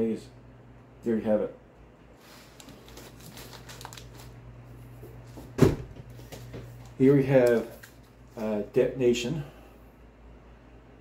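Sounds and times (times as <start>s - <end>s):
steady low hum: 0.0s - 11.0s
record sleeves rustling: 2.1s - 8.6s.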